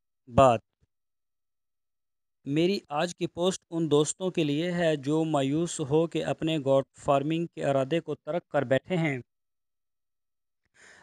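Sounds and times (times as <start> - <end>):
man narrating: 0.3 - 0.6, 2.5 - 9.2.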